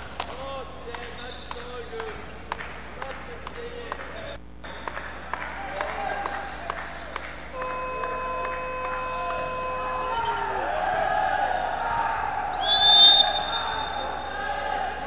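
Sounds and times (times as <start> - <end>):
crowd murmur in an arena: 0.0 - 15.0
referee's whistle: 0.4 - 2.2, 4.2 - 11.8, 12.4 - 15.0
steady tone: 7.4 - 12.4.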